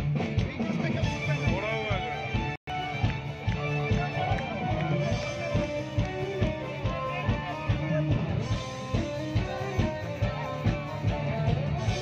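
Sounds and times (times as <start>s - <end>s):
bass guitar: 0.0s - 12.0s
drum beat: 0.0s - 12.0s
electric guitar: 0.0s - 12.0s.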